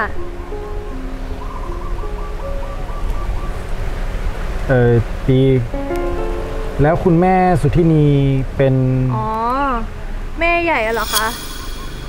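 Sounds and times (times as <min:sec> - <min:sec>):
soft music of held tones: 0:00.0 - 0:03.9, 0:05.7 - 0:08.3.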